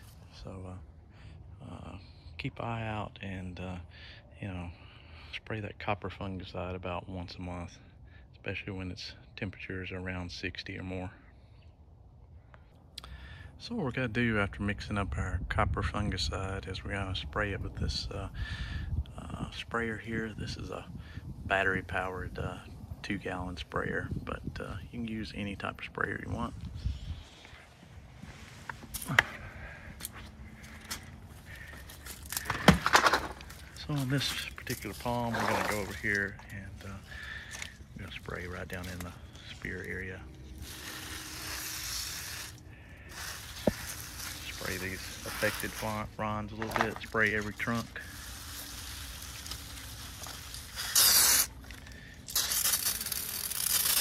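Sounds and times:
rustling of stiff palm fronds: 27.6s - 54.0s
sprayer handling clicks and knocks: 32.4s - 33.6s
loud bursts of spray: 40.5s - 46.0s, 47.6s - 54.0s
pump sprayer hissing: 40.5s - 54.0s.

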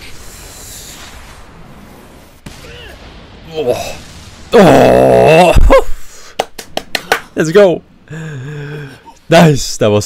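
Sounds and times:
hissing rush of noise: 0.0s - 6.4s.

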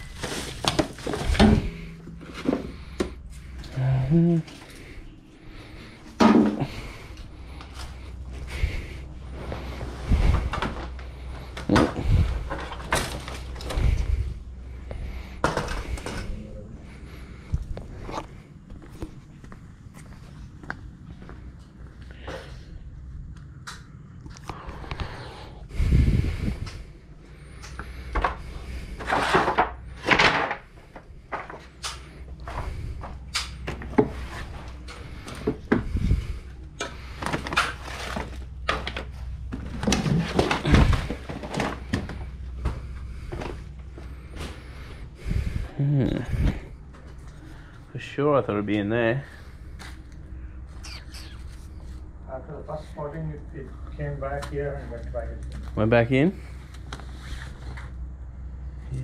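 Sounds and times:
steady low hum: 0.0s - 59.0s
household items knocking and clunking: 0.2s - 3.2s, 6.2s - 6.8s
footsteps: 17.4s - 22.4s
aluminium ladder being shifted: 29.0s - 30.6s.

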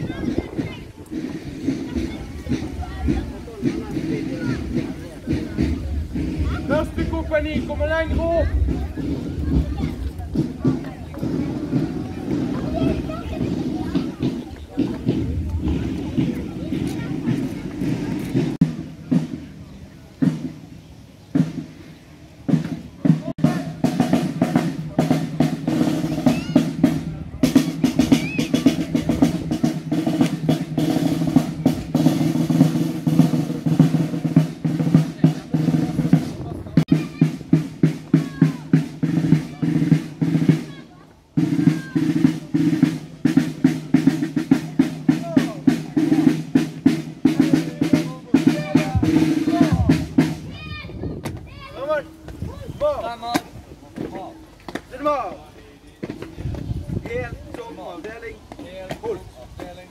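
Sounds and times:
marching snare drums with rolls: 0.0s - 59.9s.

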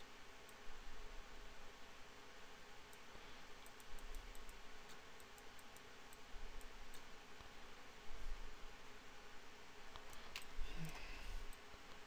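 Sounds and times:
faint steady hiss: 0.0s - 12.0s
computer mouse clicking: 2.9s - 7.5s, 9.9s - 12.0s.

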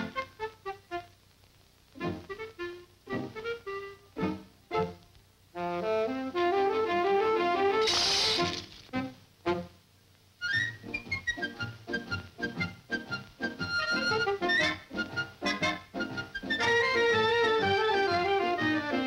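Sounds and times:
orchestral cartoon music: 2.1s - 5.0s, 5.6s - 9.7s, 10.4s - 19.0s
short hiss-like burst: 7.8s - 9.0s.

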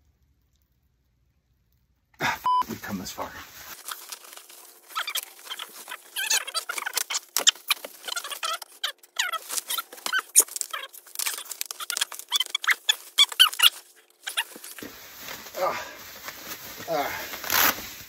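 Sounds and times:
bubble wrap crinkling: 2.7s - 18.0s
plastic squeaking as it rubs: 3.7s - 14.9s, 17.4s - 18.0s.

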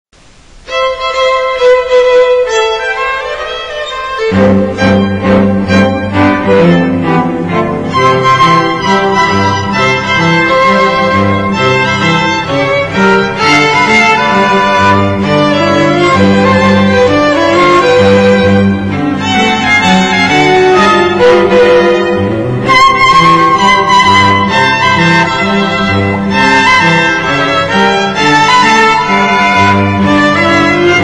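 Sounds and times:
violin melody: 0.6s - 31.0s
low bowed strings: 0.7s - 31.0s.

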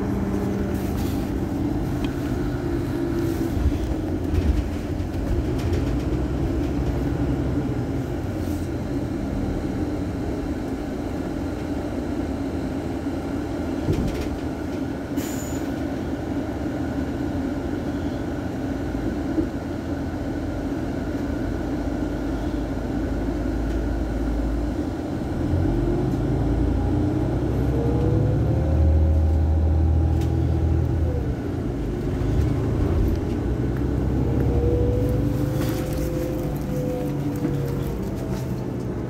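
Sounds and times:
diesel bus engine idling: 0.0s - 39.0s.

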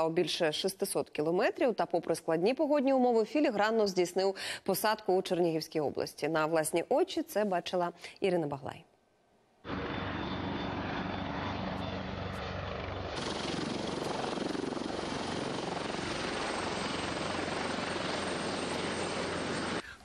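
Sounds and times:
helicopter rotor and turbine noise: 9.6s - 19.8s.

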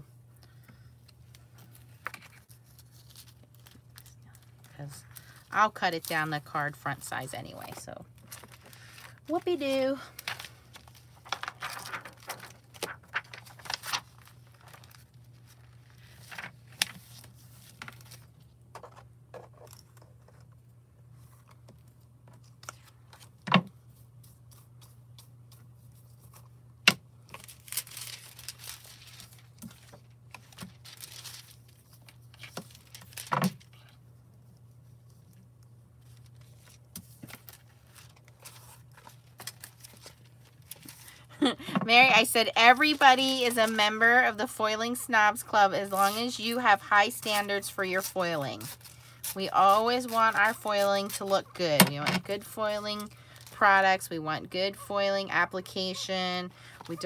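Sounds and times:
metallic foil sheets crinkling: 1.5s - 18.4s, 27.3s - 34.0s, 36.0s - 53.8s.

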